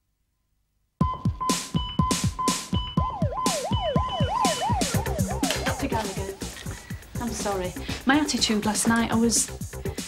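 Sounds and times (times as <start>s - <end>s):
electronic theme tune: 1.0s - 7.7s
fast drum beat: 1.6s - 10.0s.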